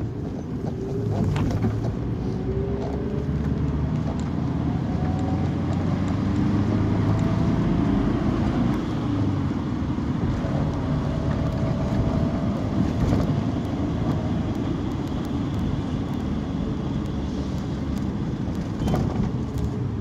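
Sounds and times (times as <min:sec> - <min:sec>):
bus engine and road noise: 0:00.0 - 0:20.0.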